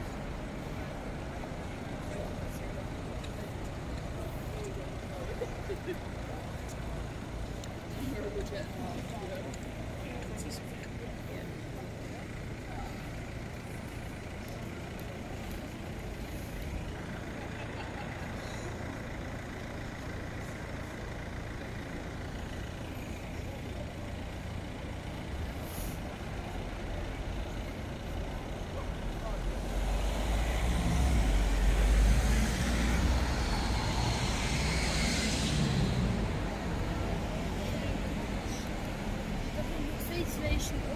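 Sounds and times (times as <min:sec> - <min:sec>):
cars passing with low rumble: 0:00.0 - 0:40.9
loud vehicle passing close: 0:29.6 - 0:38.6.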